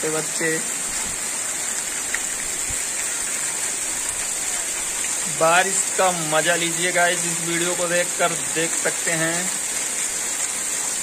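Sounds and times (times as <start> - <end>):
heavy rain on trees and ground: 0.0 - 11.0.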